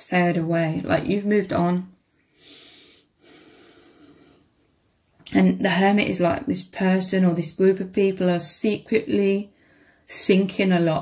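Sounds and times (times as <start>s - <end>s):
person breathing near microphone: 2.2s - 4.8s, 9.5s - 10.1s.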